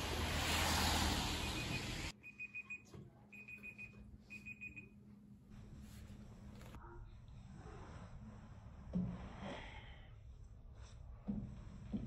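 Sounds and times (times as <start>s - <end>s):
outdoor noise rush: 0.0s - 2.1s.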